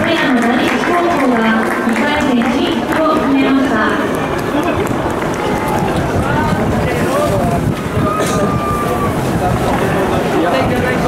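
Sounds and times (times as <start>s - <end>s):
stadium crowd talking and calling: 0.0s - 11.0s.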